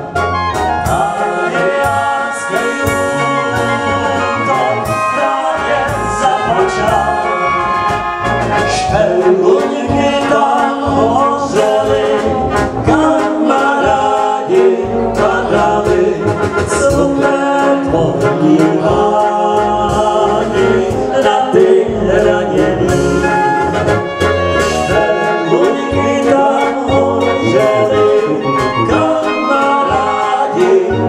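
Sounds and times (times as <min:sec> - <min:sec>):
brass band playing: 0:00.0 - 0:31.0
men singing into microphones: 0:00.0 - 0:31.0.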